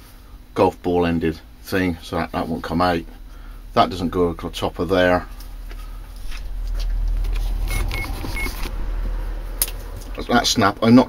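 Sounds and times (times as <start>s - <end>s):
handling noise against microphone: 5.4s - 8.8s
short high beeps: 7.7s - 8.6s.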